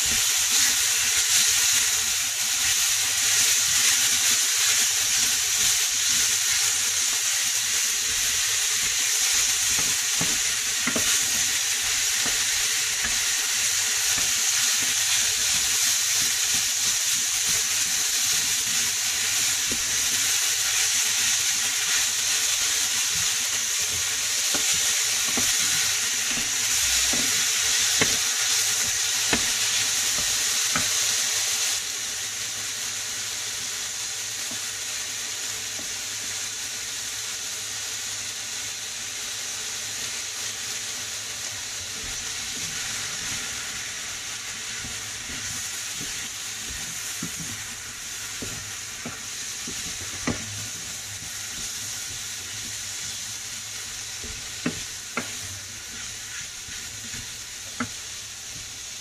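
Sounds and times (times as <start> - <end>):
food sizzling in a skillet: 0.0 - 59.0
wooden spoon stirring: 2.6 - 31.1, 41.8 - 58.8.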